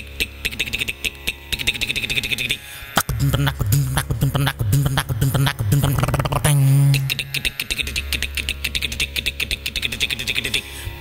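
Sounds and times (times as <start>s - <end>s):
steady low hum: 0.3s - 11.0s
fast mouth clicks: 3.0s - 6.6s.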